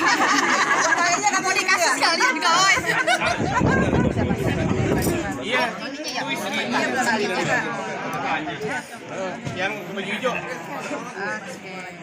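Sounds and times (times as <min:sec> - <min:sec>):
chatter of people talking: 0:00.0 - 0:12.0.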